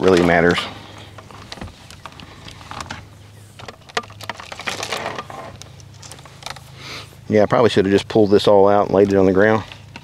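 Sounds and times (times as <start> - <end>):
low steady hum: 0.0 - 10.0
cable scraping against plastic: 3.6 - 6.7.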